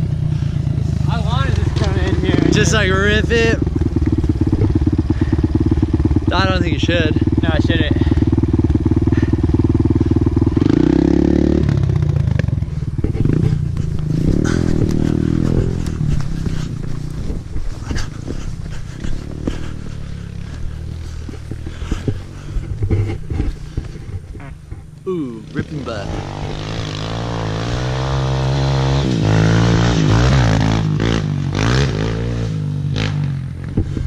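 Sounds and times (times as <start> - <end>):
motorcycle engine idling and revving: 0.0 - 34.0.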